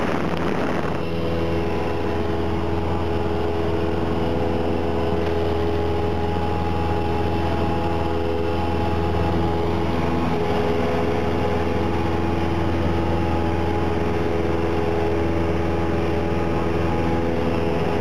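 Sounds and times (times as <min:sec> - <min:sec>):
airplane engine drone in cockpit: 0:00.0 - 0:18.0.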